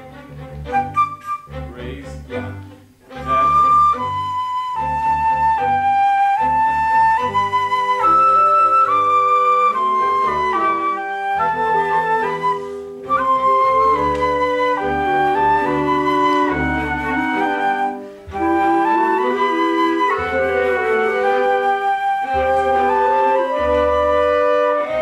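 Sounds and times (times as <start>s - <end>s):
orchestra strings playing: 0.0s - 25.0s.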